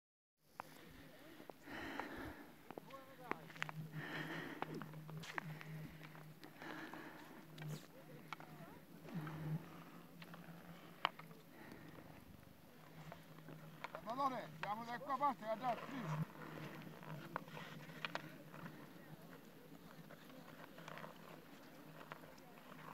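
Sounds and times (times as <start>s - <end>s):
ice skate blades scraping ice: 12.9s - 22.9s.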